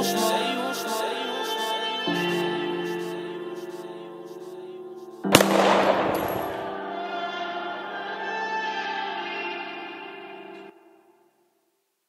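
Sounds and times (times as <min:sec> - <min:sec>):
gunshot: 0:05.3 - 0:06.7.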